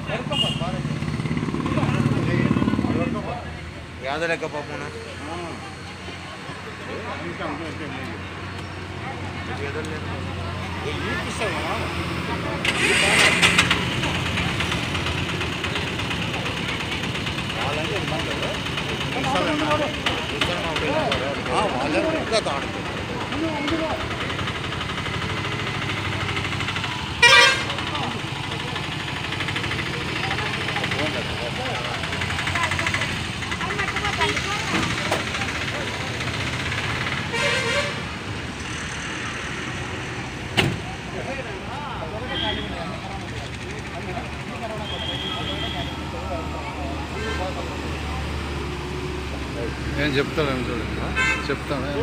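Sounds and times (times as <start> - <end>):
street noise: 0.0 - 52.0
voices: 0.0 - 52.0
vehicle horn tooting: 0.2 - 0.8, 27.2 - 27.8, 37.3 - 38.1, 42.3 - 42.8, 44.8 - 46.0, 51.2 - 51.6.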